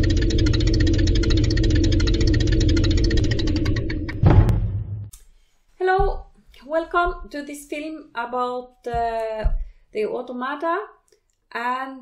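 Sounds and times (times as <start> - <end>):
machine-like drone with ticking: 0.0 - 5.1.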